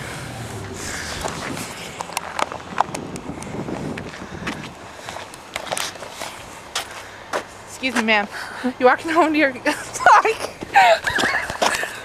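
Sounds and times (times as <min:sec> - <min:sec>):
footsteps on pavement: 0:00.6 - 0:08.5, 0:10.3 - 0:12.0
camera rustling: 0:01.1 - 0:04.6, 0:05.2 - 0:06.5.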